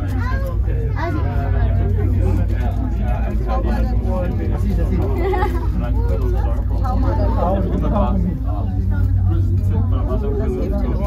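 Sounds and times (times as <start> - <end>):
passengers chatting: 0.0 - 11.0.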